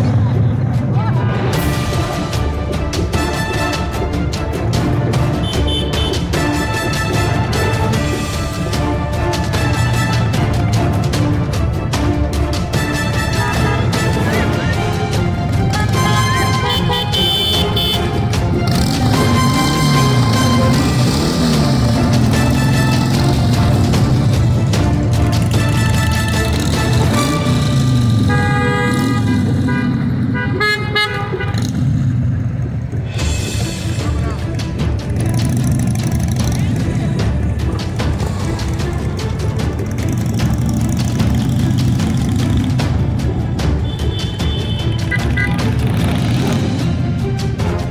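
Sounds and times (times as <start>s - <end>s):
background music: 0.0s - 47.9s
horn short toots: 5.4s - 7.2s, 15.8s - 21.4s, 25.6s - 31.8s, 43.8s - 45.8s
motorcycles running past: 15.3s - 30.4s, 31.4s - 33.1s, 34.6s - 43.4s, 45.0s - 47.2s.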